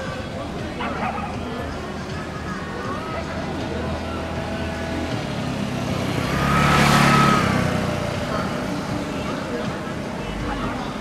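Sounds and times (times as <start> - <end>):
motor vehicle passing with whine: 0.7 - 11.0.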